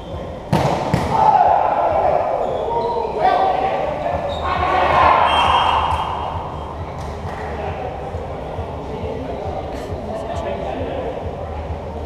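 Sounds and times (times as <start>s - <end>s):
players shouting and calling: 0.0s - 10.0s
volleyball hit hard: 0.5s - 1.3s.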